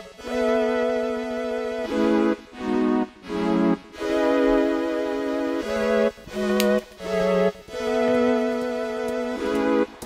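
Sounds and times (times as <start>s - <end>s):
organ-like background music: 0.0s - 10.0s.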